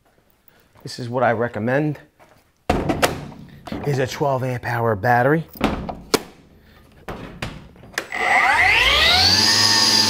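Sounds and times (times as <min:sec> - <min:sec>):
man's voice: 0:03.7 - 0:05.5.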